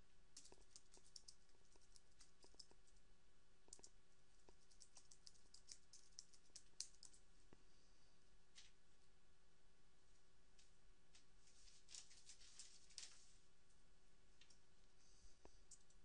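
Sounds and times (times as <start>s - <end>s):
typing on computer keyboard: 4.6s - 7.2s.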